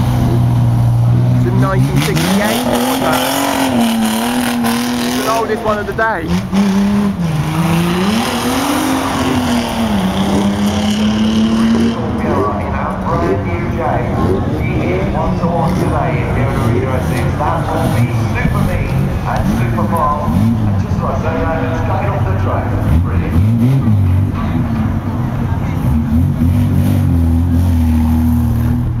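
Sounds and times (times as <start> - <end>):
steady background rush: 0.0 - 26.8
racing car engine revving: 0.0 - 29.0.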